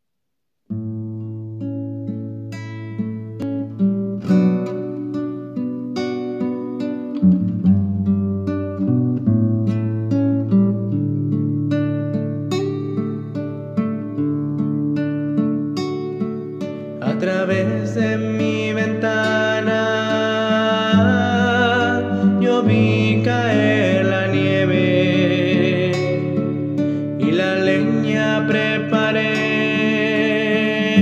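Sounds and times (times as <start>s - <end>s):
acoustic guitar playing: 0.7s - 31.0s.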